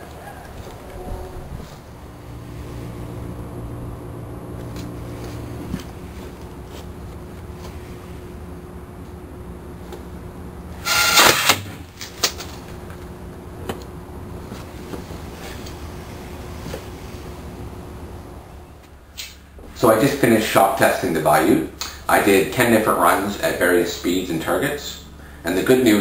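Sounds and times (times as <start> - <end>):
air gun blast: 10.8 - 11.8.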